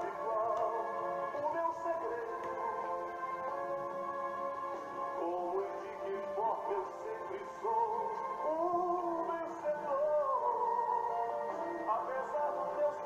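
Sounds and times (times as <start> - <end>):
man singing gospel song: 0.0 - 3.3, 5.1 - 13.0.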